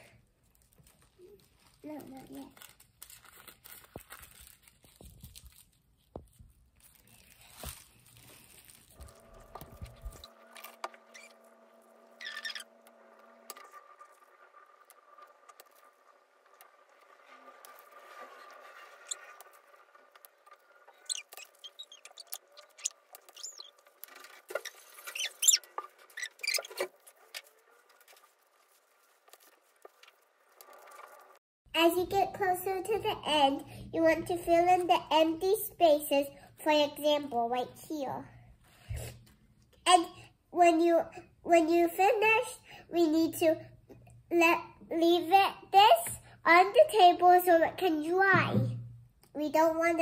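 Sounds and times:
tissue paper rustling: 0.4 - 10.8, 26.6 - 31.4.

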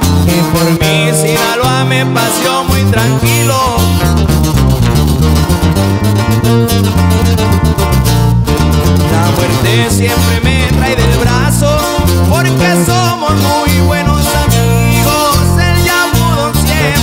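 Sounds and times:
acoustic guitars: 0.0 - 17.0
electric bass guitar: 0.0 - 17.0
person singing: 0.2 - 4.2, 9.0 - 17.0.

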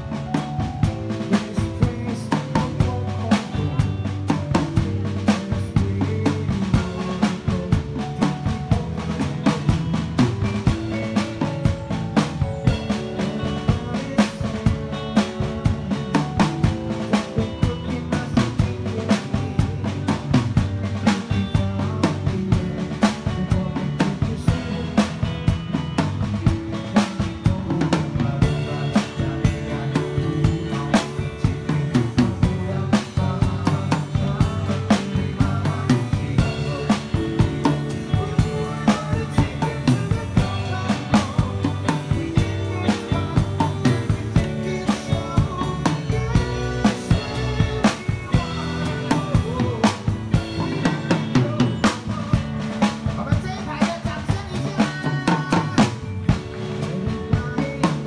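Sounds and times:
bass guitar line: 0.0 - 58.0
drum kit groove: 0.0 - 58.0.

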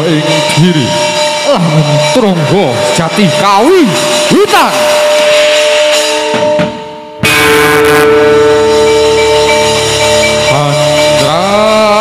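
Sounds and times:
gamelan music: 0.0 - 12.0
ringing metallophone and gong tones: 0.0 - 12.0
loud struck stroke: 2.0 - 12.0.

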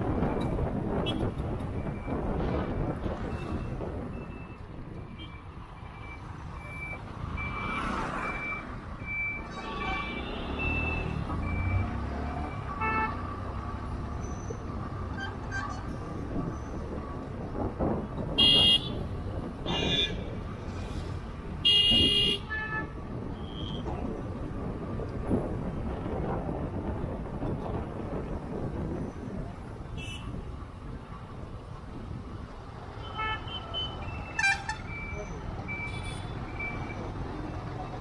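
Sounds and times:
wind noise: 0.0 - 7.5, 13.4 - 32.9
road traffic: 0.0 - 38.0
vehicle horns tooting: 18.4 - 19.0, 19.7 - 20.3, 21.6 - 23.8, 33.0 - 35.0.

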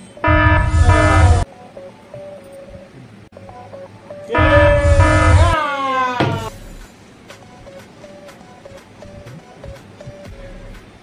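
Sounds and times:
horn-like sound effects over heavy bass: 0.2 - 1.5, 4.3 - 5.6.

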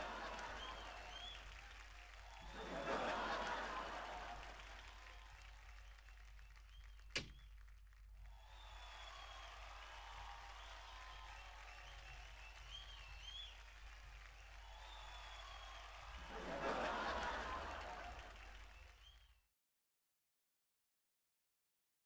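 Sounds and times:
applause: 0.0 - 19.5
door banging shut: 7.2 - 7.4.

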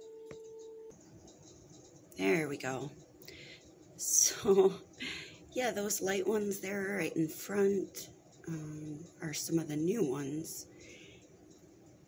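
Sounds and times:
faint steady pitched tone: 0.0 - 12.0.

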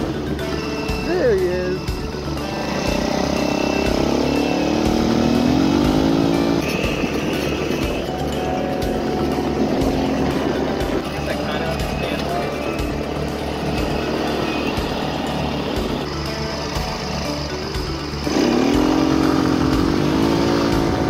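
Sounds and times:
background music: 0.0 - 21.0
small engines running: 0.0 - 21.0.

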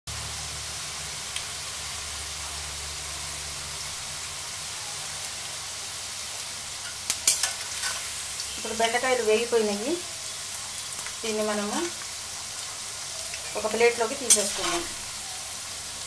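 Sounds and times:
okra sizzling in oil: 0.1 - 16.0
metal spatula scraping pan: 6.8 - 8.2, 13.4 - 15.1.

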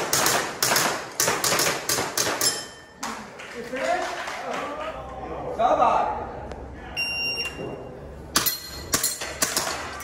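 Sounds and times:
airsoft pistol shots: 0.0 - 2.6
shot timer beep: 7.0 - 7.6.

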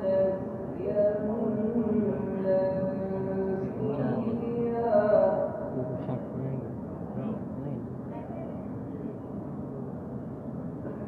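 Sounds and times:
person chanting a religious recitation: 0.0 - 6.6.

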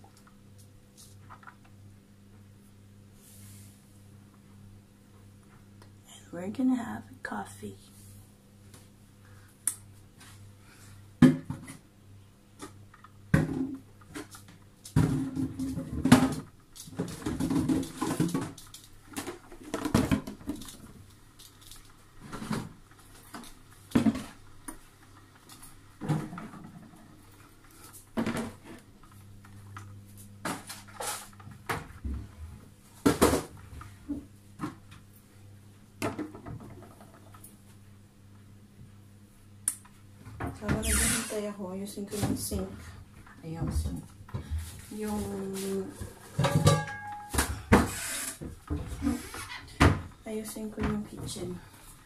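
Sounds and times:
low steady hum: 0.0 - 47.8
coffee maker gurgling and sputtering: 14.9 - 29.8, 40.6 - 41.6, 47.9 - 49.8.

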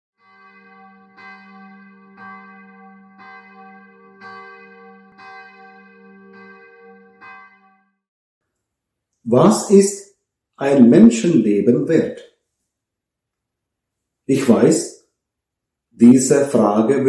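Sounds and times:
church bell tolling: 0.2 - 8.0.

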